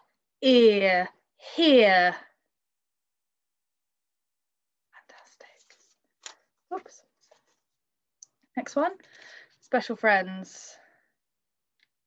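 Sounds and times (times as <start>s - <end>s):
woman whispering: 5.0s - 6.0s.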